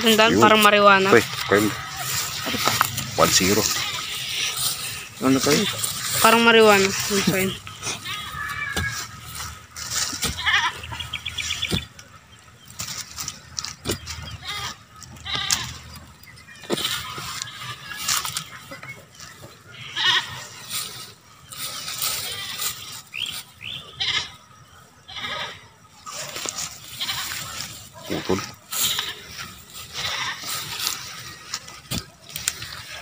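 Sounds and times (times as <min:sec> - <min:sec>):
goat bleating: 0:00.0 - 0:09.6, 0:10.2 - 0:11.1, 0:14.3 - 0:16.0, 0:16.9 - 0:18.8, 0:19.8 - 0:20.6, 0:22.1 - 0:22.9, 0:23.8 - 0:24.4, 0:25.0 - 0:25.6, 0:26.8 - 0:31.7.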